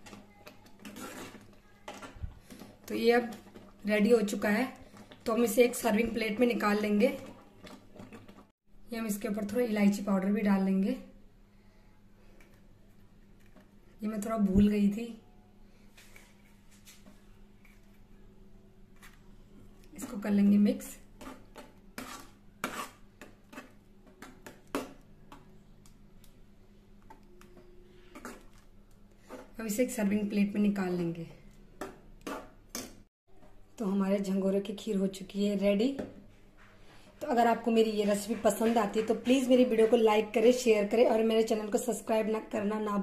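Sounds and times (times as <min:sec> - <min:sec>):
woman speaking: 0:14.0 - 0:15.2, 0:20.0 - 0:21.0, 0:33.8 - 0:36.0, 0:37.2 - 0:43.0.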